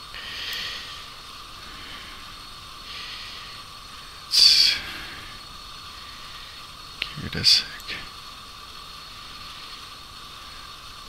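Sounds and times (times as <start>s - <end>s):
soft breaths: 0.0s - 8.2s
microphone hiss: 0.0s - 11.0s
sharp breath: 0.1s - 6.7s.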